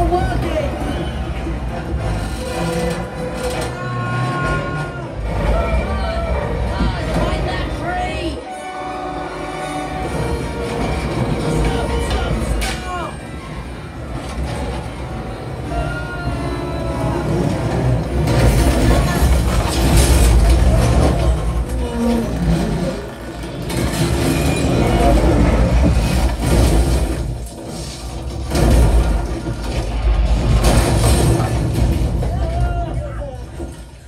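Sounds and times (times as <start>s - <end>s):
deep rumble of vehicles and wind: 0.0s - 8.4s, 9.8s - 34.0s
orchestral music: 8.2s - 18.3s.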